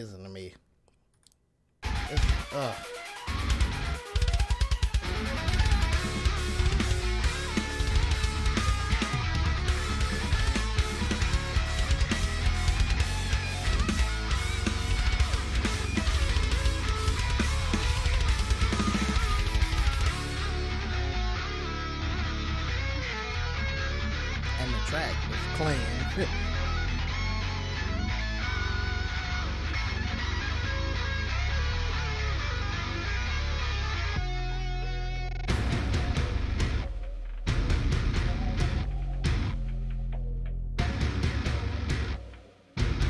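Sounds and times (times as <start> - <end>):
distorted electric guitar: 1.8 - 43.0.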